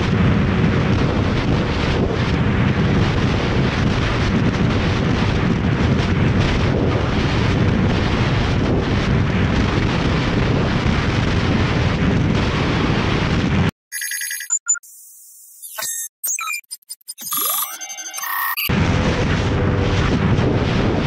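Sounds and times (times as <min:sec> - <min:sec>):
wind buffeting microphone: 0:00.0 - 0:13.7, 0:18.7 - 0:21.0
ringing phone-like tones: 0:13.9 - 0:18.7.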